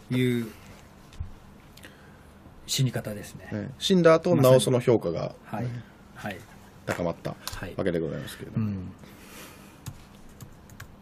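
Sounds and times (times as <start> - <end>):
taps on laptop keyboard: 9.8 - 10.9.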